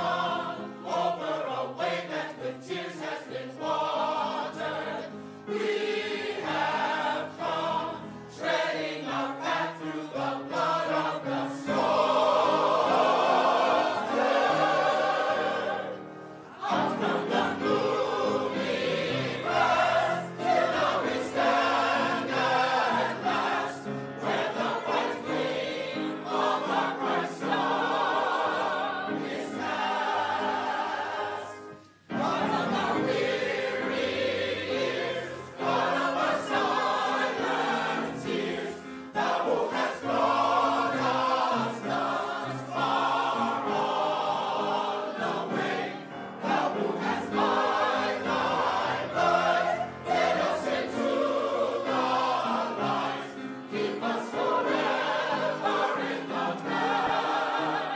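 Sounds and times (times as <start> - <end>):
mixed choir singing: 0.0 - 57.9.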